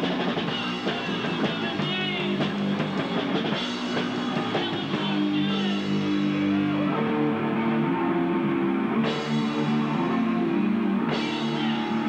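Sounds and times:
drum kit: 0.0s - 8.0s, 8.8s - 12.0s
distorted electric guitar: 0.0s - 12.0s.

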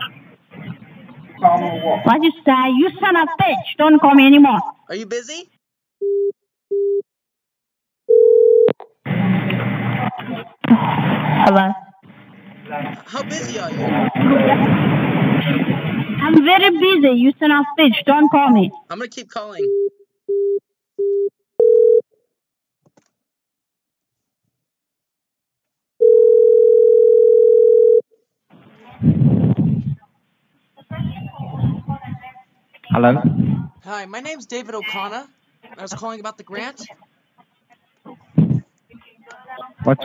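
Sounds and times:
low telephone beeps: 6.0s - 7.0s, 8.1s - 8.7s, 19.7s - 22.0s, 26.0s - 28.0s.

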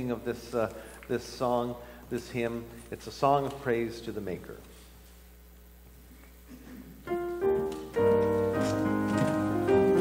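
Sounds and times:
piano playing hymn chords: 7.0s - 10.0s.

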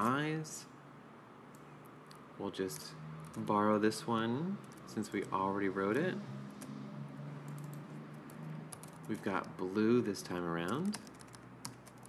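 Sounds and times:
computer keyboard typing: 3.2s - 3.5s, 7.4s - 9.6s, 10.4s - 12.0s.

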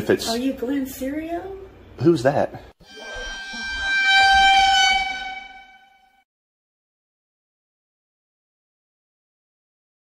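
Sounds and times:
held horn-like tone: 2.8s - 6.2s.

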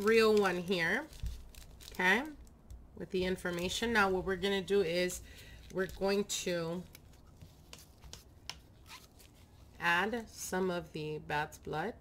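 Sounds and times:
gloved hands tapping small items: 6.9s - 8.7s.

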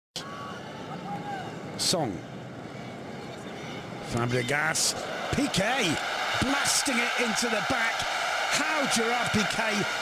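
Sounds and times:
stadium crowd noise: 0.2s - 10.0s
commentator speaking: 4.1s - 10.0s.

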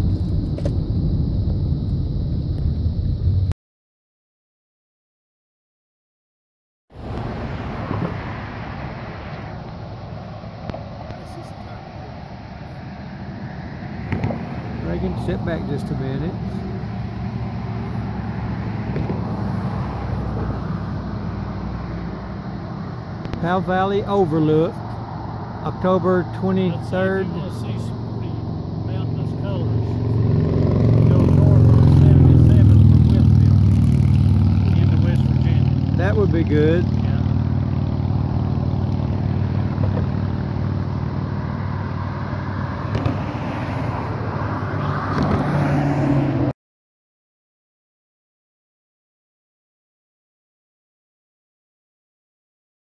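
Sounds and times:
vehicle engine drone: 0.0s - 3.6s, 6.9s - 46.5s
rushing noise: 6.9s - 36.8s.

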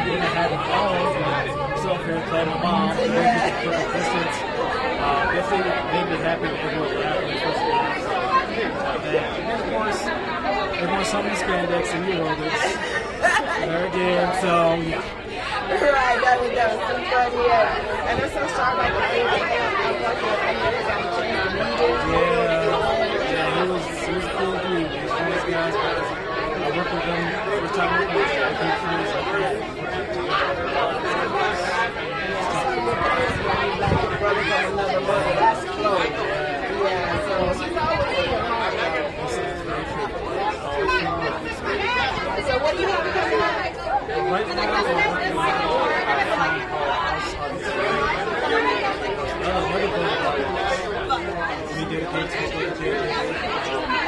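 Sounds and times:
overlapping chatter: 0.0s - 54.0s.

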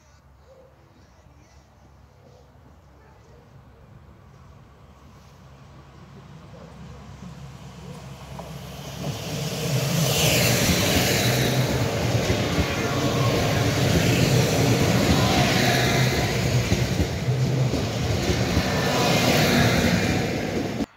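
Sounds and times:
diesel train engine drone: 3.6s - 20.9s
wheels rushing on rails: 4.3s - 20.9s.

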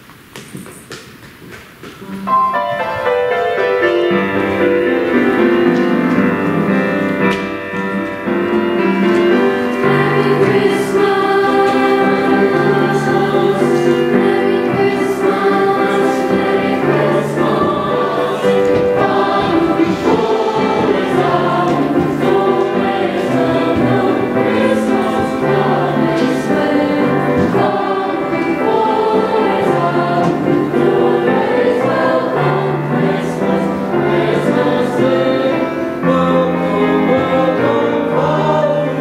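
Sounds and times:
choir singing in parts: 4.0s - 39.0s.

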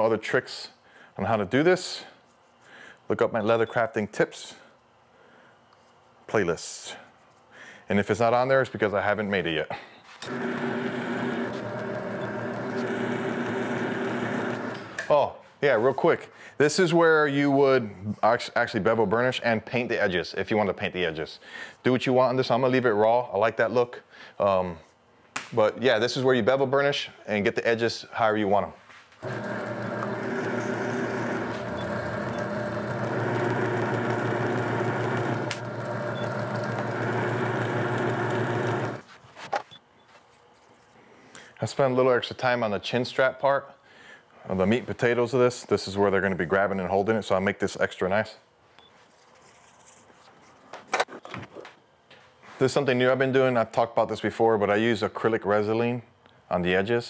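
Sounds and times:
burnishing machine motor hum: 10.2s - 15.1s, 29.2s - 39.0s.

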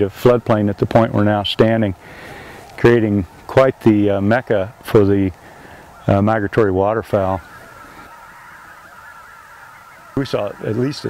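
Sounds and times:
flock of birds calling: 0.0s - 11.0s.

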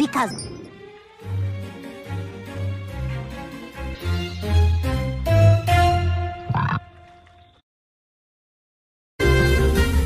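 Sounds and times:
background music: 0.0s - 7.0s, 9.2s - 10.0s
cartoon frog croak: 6.4s - 6.9s.

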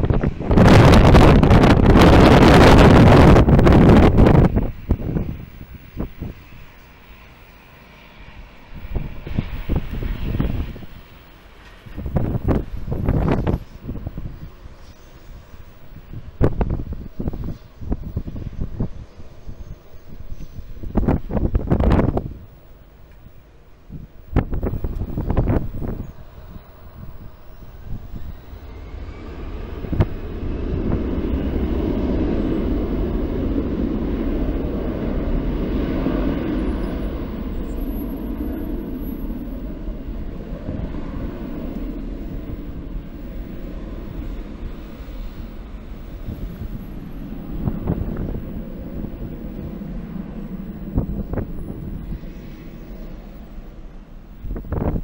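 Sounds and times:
jet airliner landing: 0.0s - 55.0s.

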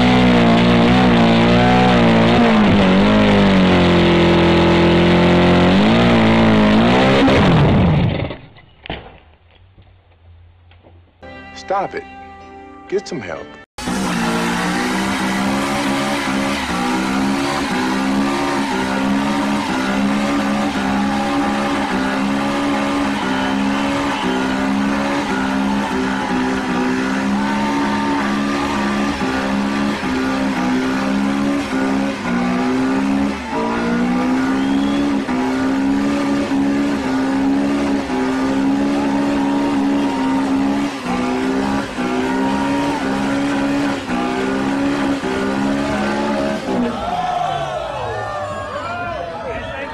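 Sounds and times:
car engine revving: 0.0s - 8.4s, 13.8s - 47.2s
tyres spinning on pavement: 13.8s - 49.9s.

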